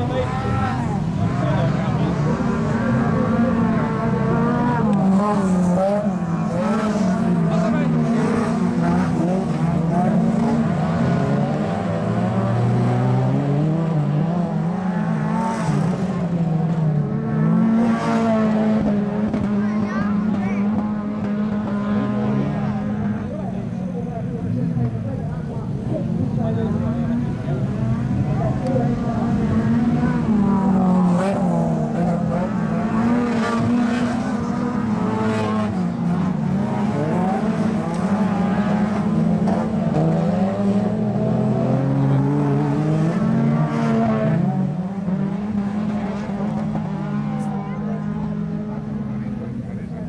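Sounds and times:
racing car engines revving: 0.0s - 50.0s.

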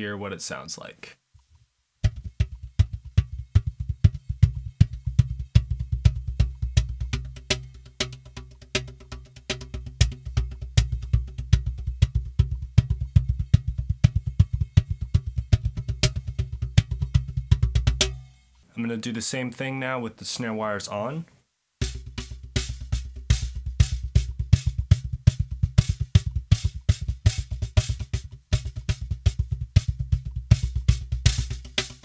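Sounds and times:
cajon bass tones and slaps: 2.0s - 18.3s, 21.8s - 32.0s.

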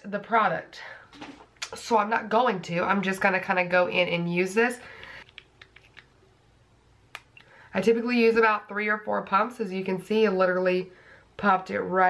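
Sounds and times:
small objects clicking and tapping: 5.2s - 6.1s.

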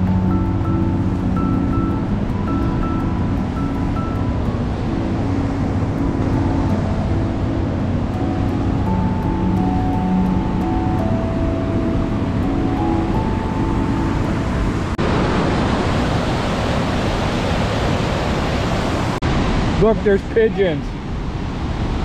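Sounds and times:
background music of held notes: 0.0s - 15.0s
river water pouring over weir: 14.8s - 22.0s.

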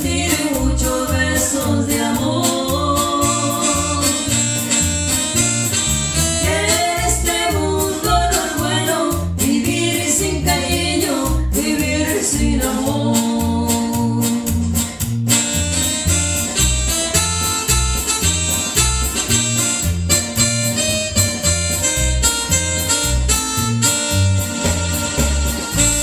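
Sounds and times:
keyboard accordion-like melody: 0.0s - 11.2s, 14.7s - 26.0s
electric bass: 0.0s - 26.0s.

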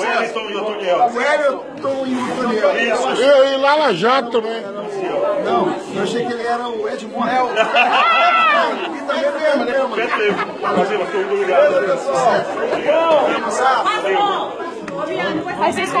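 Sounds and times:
men chattering: 0.0s - 16.0s
men laughing: 7.3s - 12.4s.

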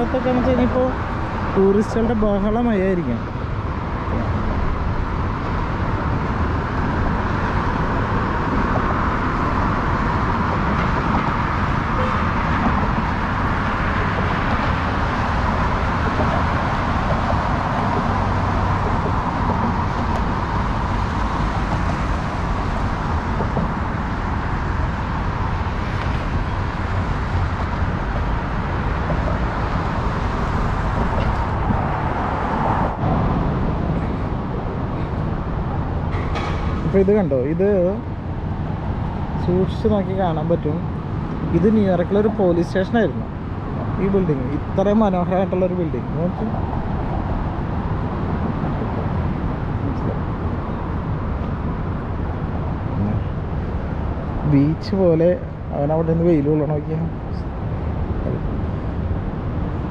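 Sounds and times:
highway traffic noise: 0.0s - 59.9s.

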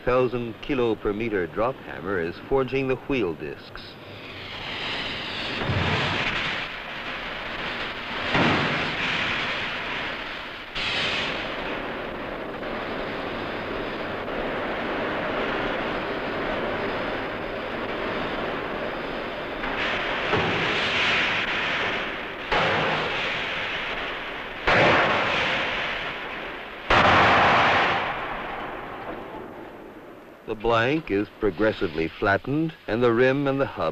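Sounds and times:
steady rushing noise: 0.0s - 33.9s.

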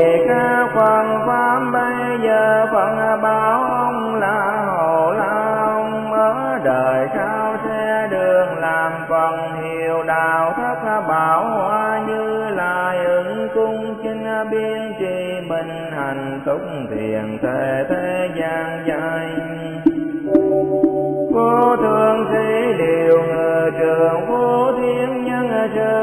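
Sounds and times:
melodic vocal chant: 0.0s - 26.0s
sustained accompaniment: 17.4s - 23.3s.

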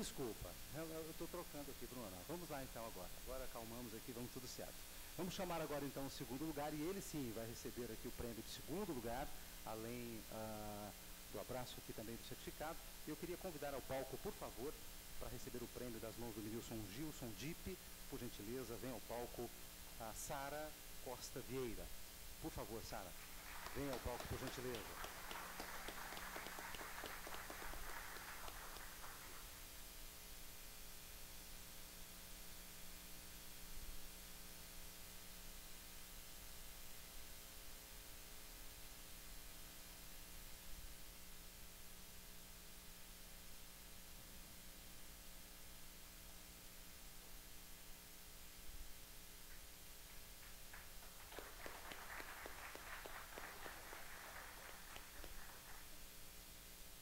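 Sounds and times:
scattered applause: 23.2s - 29.5s, 50.4s - 56.0s
crowd clapping: 23.2s - 29.6s, 50.1s - 56.0s.

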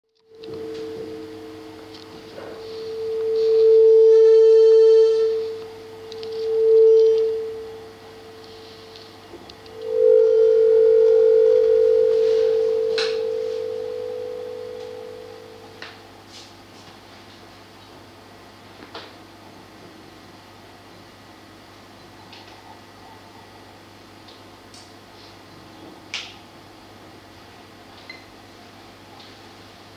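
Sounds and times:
higher electronic tones: 0.2s - 15.8s
steady electronic tone: 0.2s - 16.1s.

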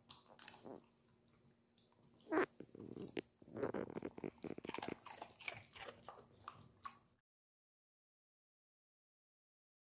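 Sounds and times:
dog crunching and chewing: 0.0s - 7.1s.

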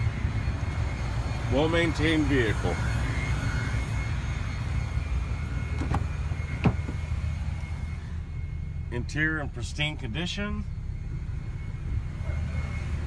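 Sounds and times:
steady low rumble: 0.0s - 13.0s
car door latch clicks: 5.8s - 6.0s.

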